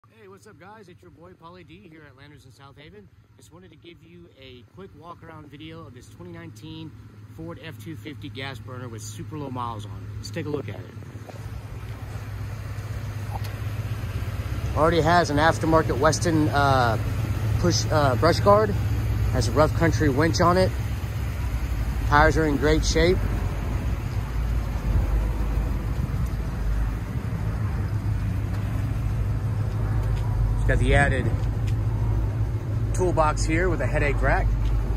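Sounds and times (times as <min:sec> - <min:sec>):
engine idling: 0:00.2 - 0:34.9.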